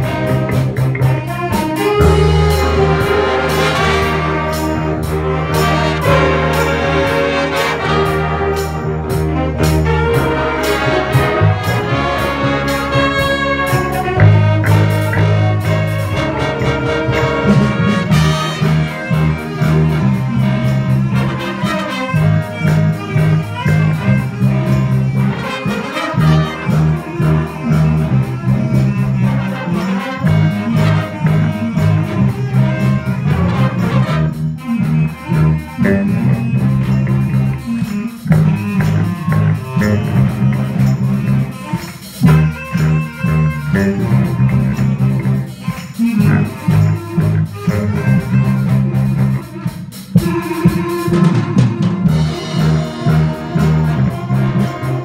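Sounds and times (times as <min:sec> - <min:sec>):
bass line: 0:00.0 - 0:55.0
big band playing: 0:00.0 - 0:55.0
drums: 0:00.0 - 0:55.0
horns: 0:00.0 - 0:55.0.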